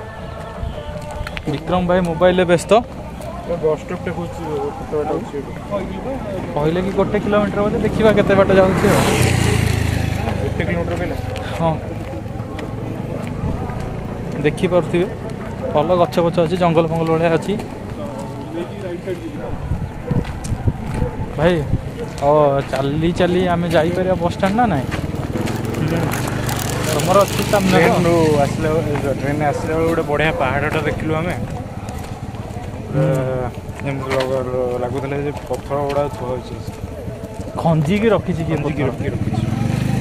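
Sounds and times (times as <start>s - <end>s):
man talking: 1.5s - 12.1s, 14.3s - 19.6s, 21.3s - 24.9s, 26.8s - 31.5s, 32.9s - 36.8s, 37.6s - 39.4s
vehicle engine passing by: 2.9s - 18.6s, 20.6s - 35.0s, 36.3s - 40.0s.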